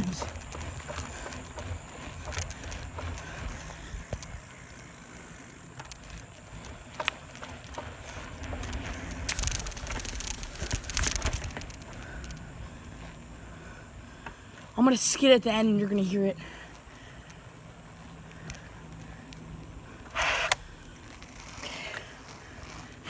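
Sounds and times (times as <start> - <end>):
bicycle clicks and rattles: 0.0 - 23.0
bicycle tyres rumbling on asphalt: 0.0 - 23.0.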